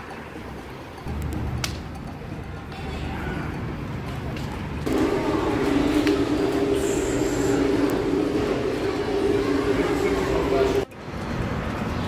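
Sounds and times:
mechanical drone: 0:04.8 - 0:10.9.

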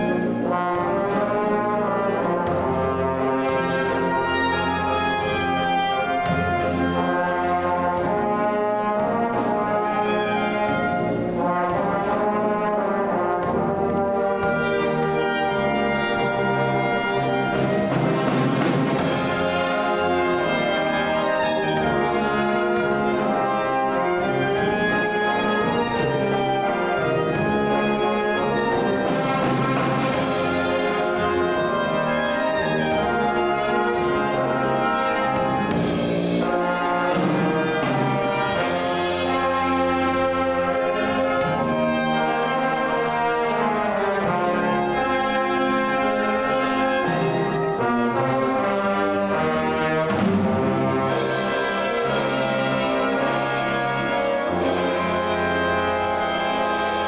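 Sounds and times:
saxophones and brass: 0:00.0 - 0:57.0.

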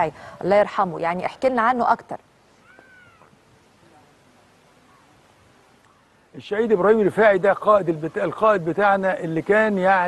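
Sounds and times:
low background hiss: 0:00.0 - 0:10.0
faint animal call: 0:02.5 - 0:04.0, 0:04.8 - 0:05.2.

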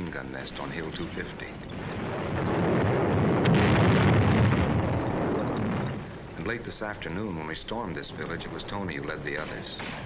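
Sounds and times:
shell explosion crack and rumble: 0:00.0 - 0:10.0.

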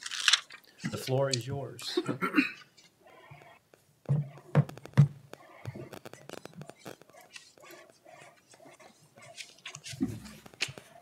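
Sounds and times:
handling noises: 0:02.7 - 0:11.0
footsteps walking: 0:03.7 - 0:11.0.

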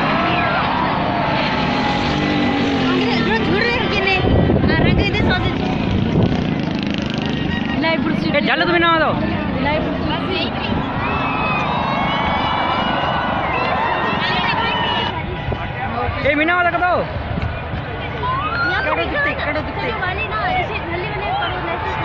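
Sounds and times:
crowd shouting: 0:00.0 - 0:05.8, 0:09.7 - 0:22.0.

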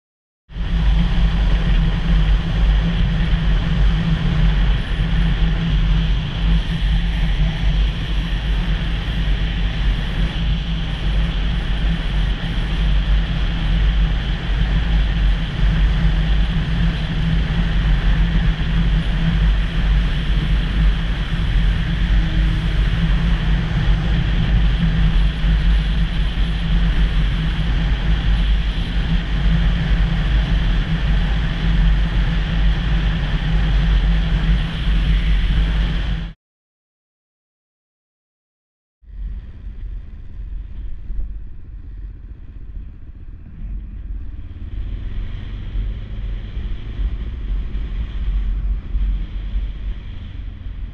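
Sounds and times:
motorcycle engine drone: 0:00.5 - 0:36.4, 0:39.0 - 0:50.9
wind rush on microphone: 0:00.5 - 0:36.4, 0:39.0 - 0:50.9.

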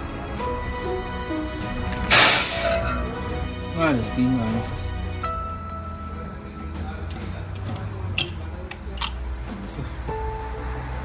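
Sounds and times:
gas venting hiss: 0:02.1 - 0:02.9.

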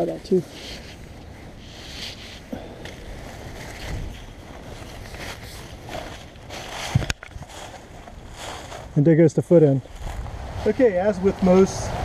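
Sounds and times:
nylon fabric rustling: 0:00.0 - 0:09.0.

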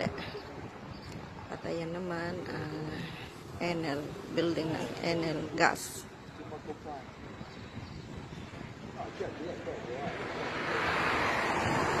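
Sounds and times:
rushing noise: 0:08.2 - 0:12.0.

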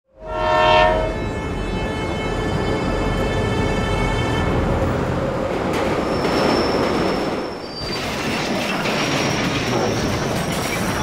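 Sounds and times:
train rumbling on rails: 0:00.2 - 0:11.0
high wheel squeal: 0:06.0 - 0:10.8.

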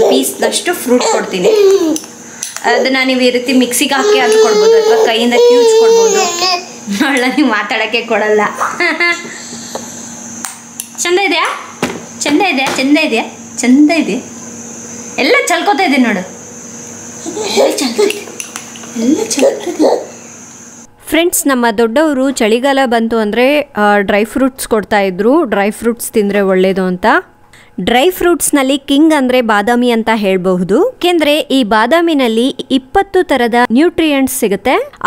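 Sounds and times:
woman speaking: 0:00.0 - 0:01.9, 0:02.6 - 0:09.4, 0:11.0 - 0:14.4, 0:15.2 - 0:16.4, 0:17.2 - 0:19.9, 0:21.0 - 0:35.0
person talking: 0:02.6 - 0:08.6.

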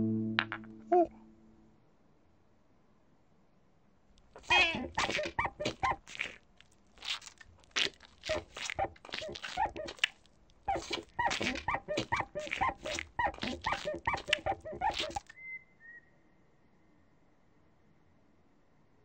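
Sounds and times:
faint high tone: 0:00.0 - 0:01.5
squeaky nonsense vocal sounds: 0:04.4 - 0:06.4, 0:07.0 - 0:10.1, 0:10.7 - 0:15.3.

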